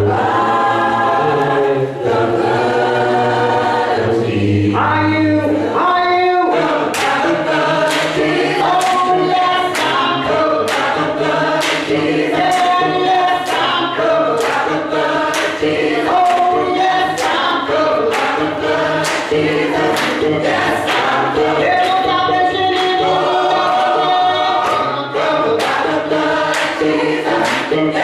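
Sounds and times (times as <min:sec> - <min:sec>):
choir singing gospel in harmony: 0:00.0 - 0:28.0
steady beat: 0:06.6 - 0:28.0.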